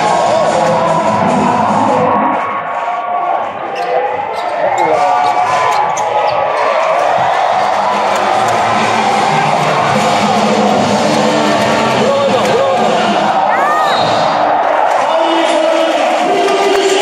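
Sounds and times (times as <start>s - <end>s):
crowd voices: 0.0s - 17.0s
loud arena music: 0.0s - 17.0s
sneakers squeaking: 3.7s - 7.3s.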